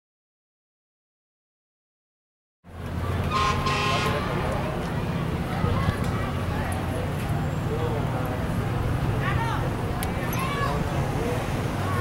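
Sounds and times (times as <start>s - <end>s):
low engine rumble: 2.7s - 12.0s
vehicle horn toot: 3.3s - 4.3s.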